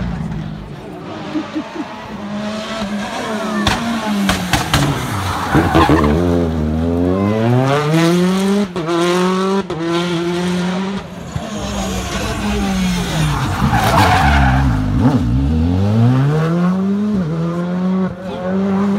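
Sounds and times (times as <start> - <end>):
car braking and downshifting: 0.0 - 18.9
rally car engine accelerating: 0.0 - 18.9.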